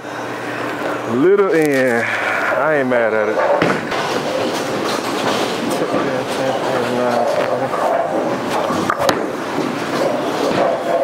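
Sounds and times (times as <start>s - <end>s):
bowling balls rolling on lanes: 3.3s - 11.0s.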